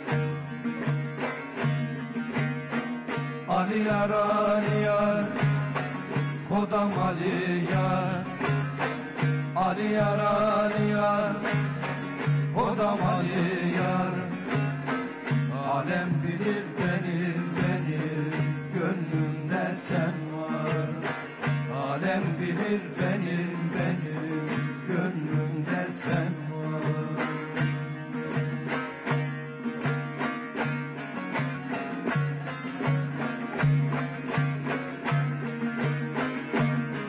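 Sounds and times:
plucked lute melody: 0:00.0 - 0:37.0.

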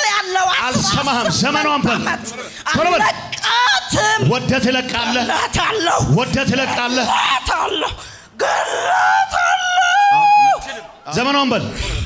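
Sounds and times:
woman screaming: 0:07.2 - 0:11.0.

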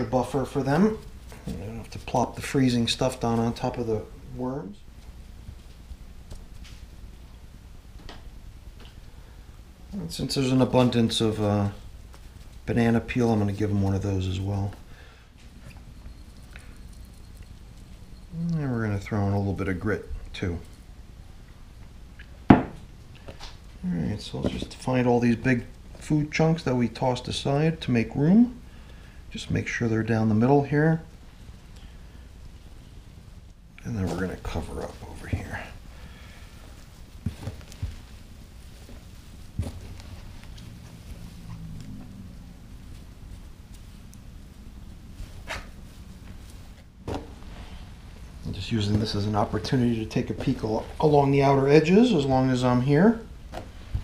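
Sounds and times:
faint handling noise: 0:29.3 - 0:54.0.

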